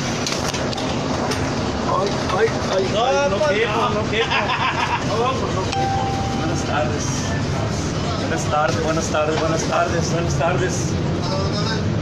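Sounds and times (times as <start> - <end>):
bus engine rumble: 0.0 - 12.0.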